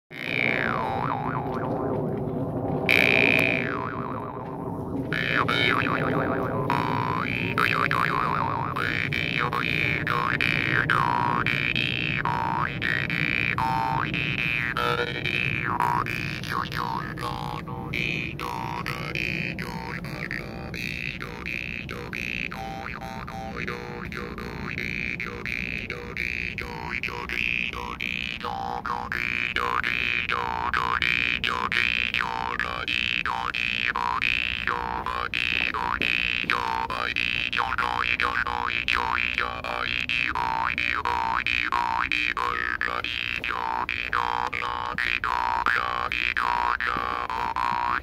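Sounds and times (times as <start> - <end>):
jaw harp twanging: 2.9 - 48.0.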